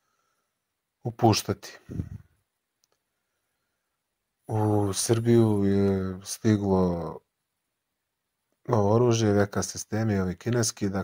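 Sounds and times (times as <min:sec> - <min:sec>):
man speaking: 0:01.0 - 0:02.2, 0:04.5 - 0:07.2, 0:08.7 - 0:11.0
faint click: 0:02.8 - 0:03.1.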